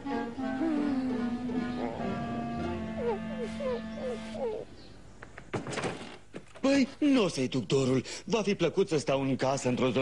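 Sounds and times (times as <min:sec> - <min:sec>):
held music chord: 0:00.0 - 0:04.8
cartoon dog whimpering: 0:00.5 - 0:02.3, 0:02.9 - 0:04.7.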